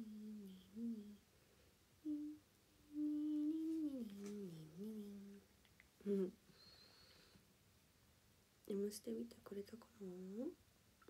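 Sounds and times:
woman humming softly: 0:00.0 - 0:01.2, 0:02.0 - 0:05.4, 0:06.0 - 0:06.8.

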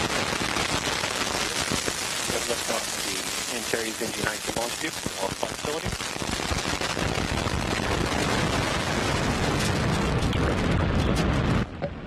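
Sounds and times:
rocket engine crackling roar: 0:00.0 - 0:12.0.

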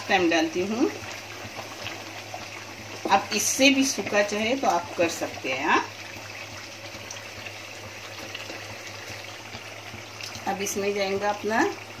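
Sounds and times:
curry bubbling in a pot: 0:00.0 - 0:12.0.

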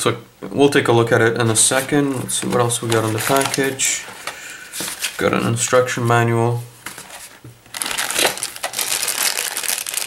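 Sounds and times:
plastic bag crinkling: 0:02.1 - 0:04.2, 0:07.1 - 0:10.0.

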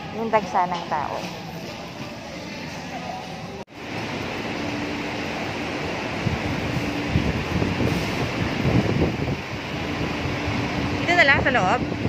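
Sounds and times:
parking garage hum: 0:00.0 - 0:12.0
wind noise on microphone: 0:06.2 - 0:12.0.

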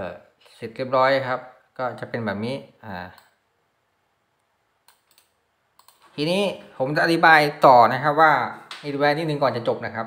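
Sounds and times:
man speaking: 0:00.0 - 0:03.2, 0:06.1 - 0:10.0
faint computer clicks: 0:04.4 - 0:06.1.

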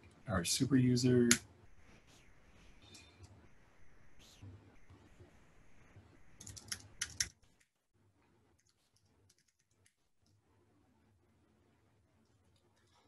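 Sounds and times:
computer keyboard typing: 0:06.3 - 0:07.3, 0:08.6 - 0:09.9.

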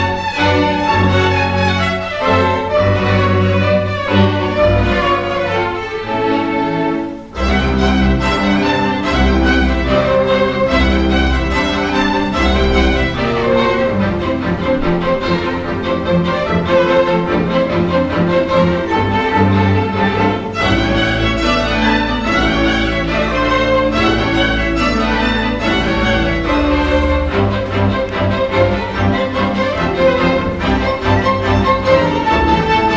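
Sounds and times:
cellos: 0:00.0 - 0:32.9
double bass notes: 0:00.0 - 0:32.9
violins: 0:00.0 - 0:32.9.

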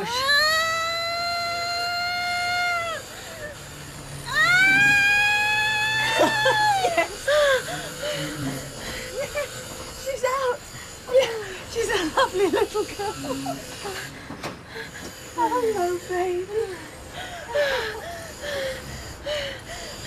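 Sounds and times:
woman screaming: 0:00.0 - 0:03.5, 0:04.3 - 0:07.7
woman whimpering and gasping: 0:16.5 - 0:20.0.

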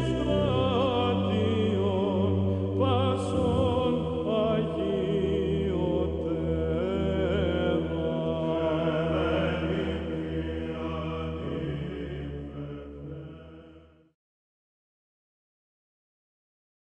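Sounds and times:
low drone: 0:00.0 - 0:13.9
voice chanting ornamented melody: 0:00.0 - 0:14.0.

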